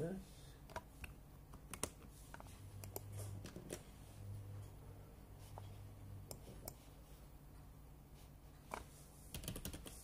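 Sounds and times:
computer keyboard keystrokes: 0.7 - 2.0, 8.7 - 10.0.

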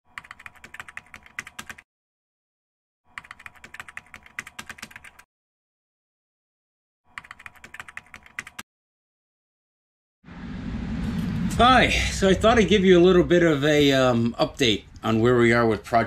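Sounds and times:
computer keyboard typing: 0.1 - 1.8, 3.1 - 5.3, 7.1 - 8.6.

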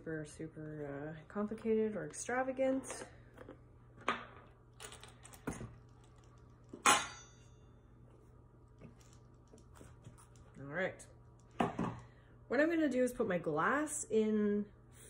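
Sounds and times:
sharp metallic clink: 6.9 - 7.6.

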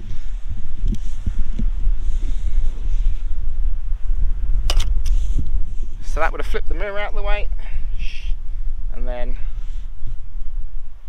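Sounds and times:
wind buffeting microphone: 0.0 - 11.0
camera mirror clack: 4.7 - 5.0.

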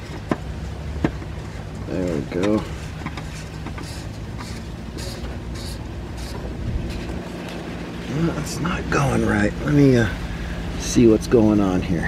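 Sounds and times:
steady low hum: 0.0 - 12.0
plastic cap scraping on metal: 2.5 - 7.2.

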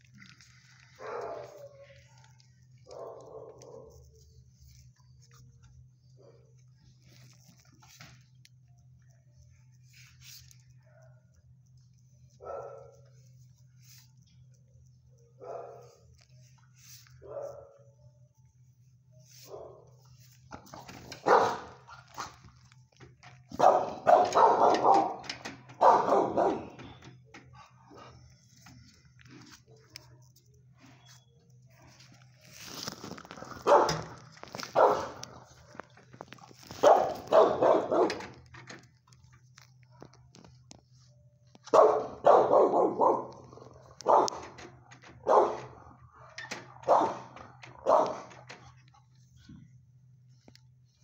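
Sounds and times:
steady low hum: 0.0 - 51.0
dog barking: 0.9 - 4.1, 12.4 - 13.1, 15.4 - 16.0, 17.2 - 17.9, 19.4 - 20.0, 21.1 - 22.4, 23.5 - 26.8, 33.6 - 35.9, 36.7 - 38.3, 41.6 - 44.6, 45.2 - 48.4.

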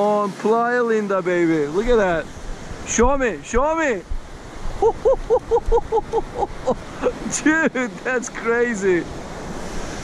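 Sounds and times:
surf: 0.0 - 10.0
wind on microphone: 1.7 - 7.5
man laughing: 4.8 - 8.1.

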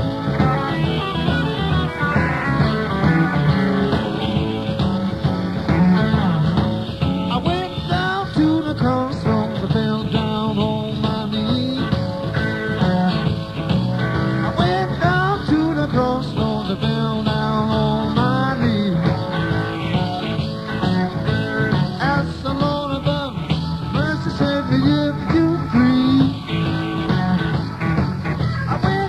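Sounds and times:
blues-rock band playing: 0.0 - 29.0
electric lead guitar bending notes: 0.0 - 29.0.

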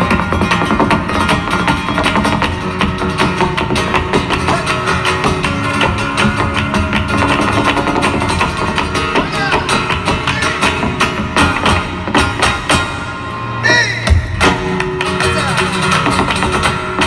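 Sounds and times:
acoustic guitar: 0.0 - 17.0
rhythmic hand-clapping: 14.4 - 17.0.

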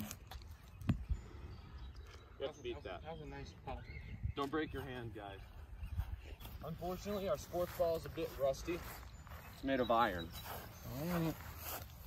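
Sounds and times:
wind rumble on microphone: 3.2 - 6.6.

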